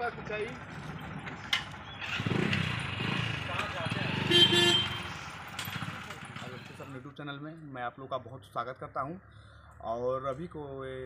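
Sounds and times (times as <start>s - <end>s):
vehicle engine running: 0.0s - 11.0s
short horn honk: 4.2s - 5.2s.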